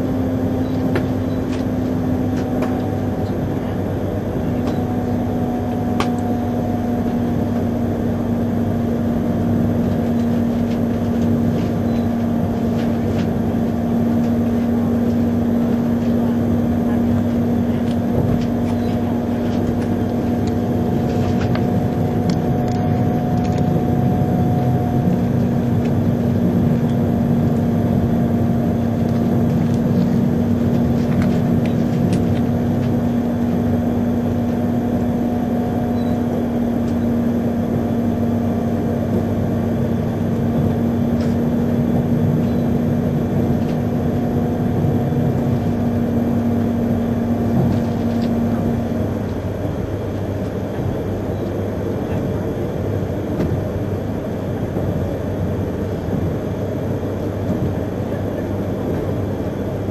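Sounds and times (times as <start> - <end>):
train running noise: 0.0 - 59.9.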